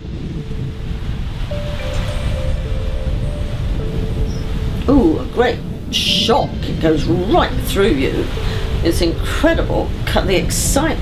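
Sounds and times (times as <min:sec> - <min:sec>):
soft ambient music: 0:00.0 - 0:11.0
steady rushing noise: 0:00.0 - 0:11.0.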